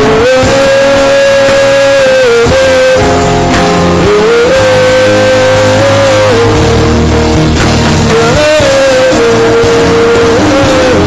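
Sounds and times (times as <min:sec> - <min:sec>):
live worship band music: 0:00.0 - 0:11.0.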